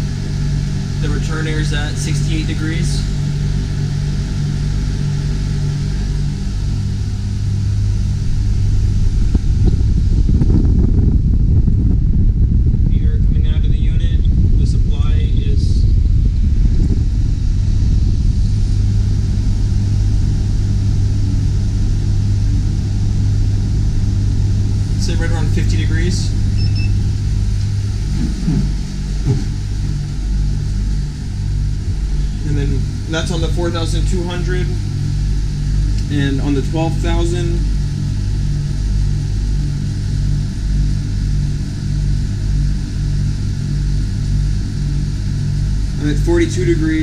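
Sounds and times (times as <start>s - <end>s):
air conditioners humming: 0.0s - 47.0s.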